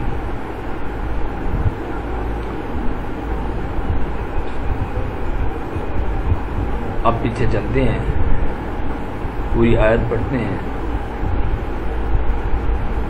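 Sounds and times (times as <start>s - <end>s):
low rumble with hiss: 0.0s - 13.0s.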